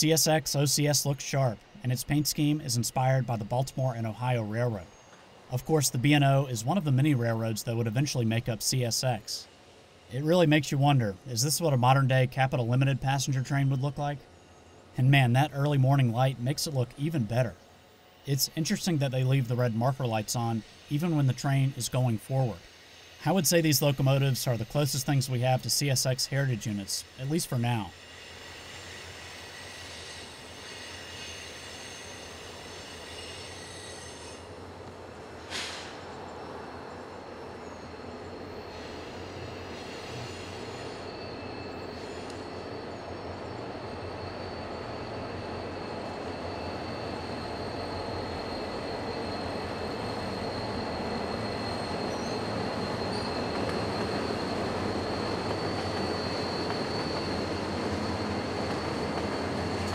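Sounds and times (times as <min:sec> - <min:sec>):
train rumble: 0:00.0 - 0:59.9
train wheels squealing on rails: 0:00.0 - 0:59.9.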